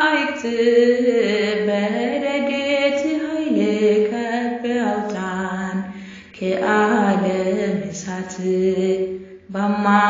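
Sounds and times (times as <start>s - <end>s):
person singing a chant-like hymn: 0.0s - 10.0s.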